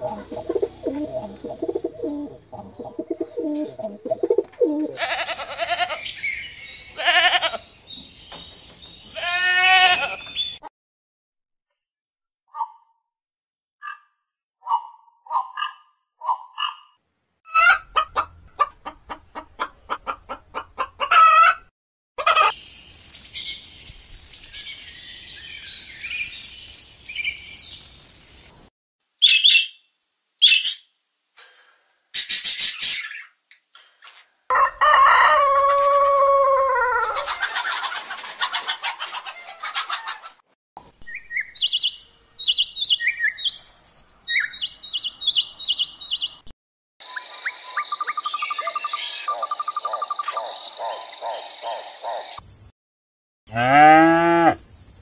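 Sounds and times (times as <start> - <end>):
hens clucking: 0.0 - 5.9, 17.5 - 21.6, 22.2 - 22.6, 37.0 - 40.4
high bird chirps: 22.5 - 28.5, 29.2 - 30.9, 41.0 - 52.4
rooster crowing: 34.5 - 37.3.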